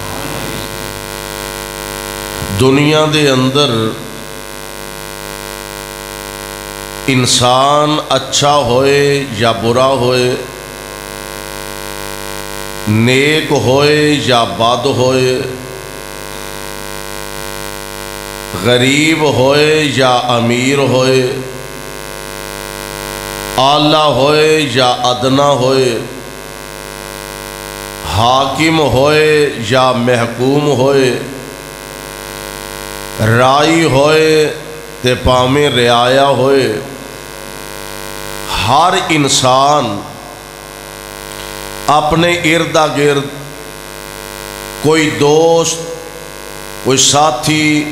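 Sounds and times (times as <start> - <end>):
man's voice: 0.0 - 1.0, 2.4 - 4.2, 7.1 - 10.6, 12.9 - 15.9, 18.6 - 21.8, 23.6 - 26.3, 28.0 - 31.5, 33.2 - 37.2, 38.5 - 40.4, 41.9 - 43.6, 44.8 - 46.2, 46.8 - 47.9
sound system electrical hum: 0.0 - 47.9.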